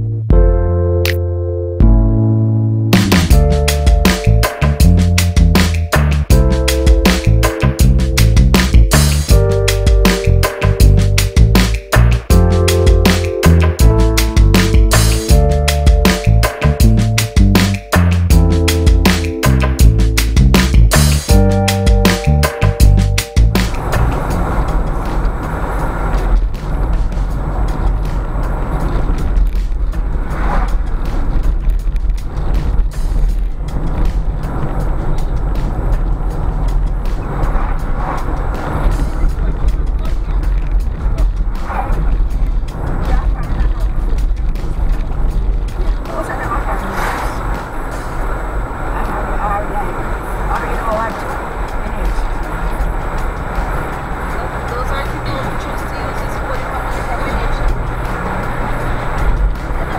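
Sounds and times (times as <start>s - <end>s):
music: 0.0s - 59.9s
car cabin road rumble: 3.0s - 59.9s.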